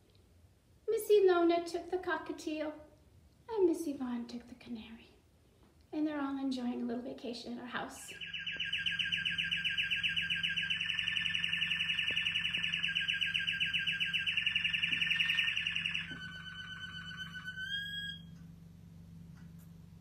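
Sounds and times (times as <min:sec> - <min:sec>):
canary trilling: 0:08.2 - 0:18.2.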